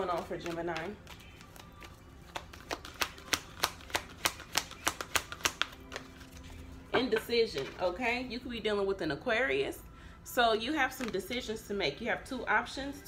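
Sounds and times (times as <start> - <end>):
cards being shuffled: 0.0 - 6.8, 11.0 - 11.3.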